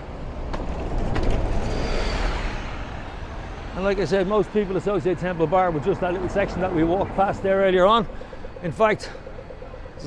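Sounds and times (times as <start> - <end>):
vehicle passing rumble: 1.3 - 10.0.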